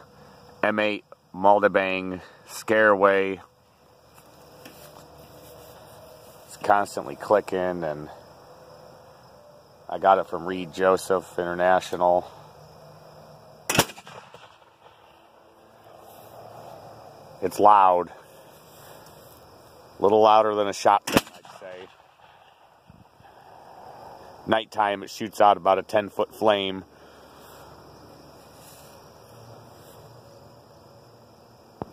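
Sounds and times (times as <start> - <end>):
outdoor background hiss: 0.0 - 31.9
propane cannon bang: 13.6 - 15.0, 21.0 - 22.6.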